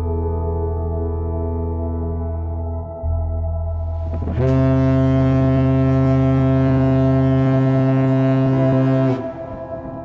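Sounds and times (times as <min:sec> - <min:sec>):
ship's horn long low blast: 0:03.8 - 0:10.0.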